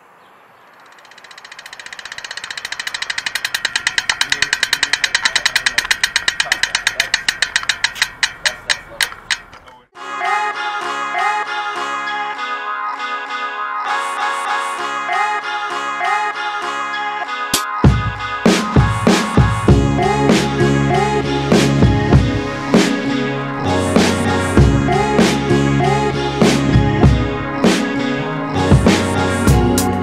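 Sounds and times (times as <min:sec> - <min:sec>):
fast clicking: 0:00.7 - 0:09.8.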